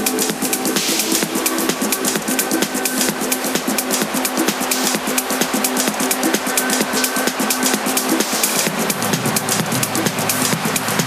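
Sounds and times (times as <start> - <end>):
electronic house music: 0.0 - 11.0.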